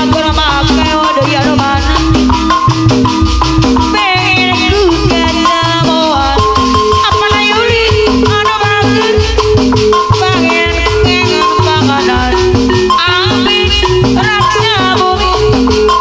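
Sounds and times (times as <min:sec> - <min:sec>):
drum strokes: 0:00.0 - 0:16.0
gamelan metallophones: 0:00.0 - 0:16.0
sliding melody line: 0:00.0 - 0:16.0.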